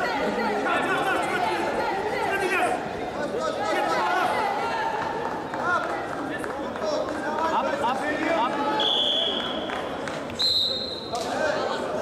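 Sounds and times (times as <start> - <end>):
referee's whistle blast: 8.8 - 9.6, 10.4 - 11.2.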